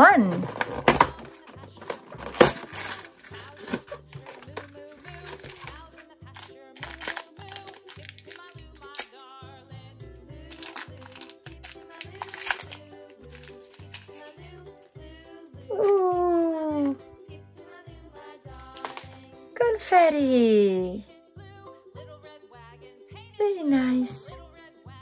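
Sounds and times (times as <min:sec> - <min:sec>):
foil bag crinkling: 0:00.2 - 0:09.2, 0:10.4 - 0:14.9, 0:18.2 - 0:19.3.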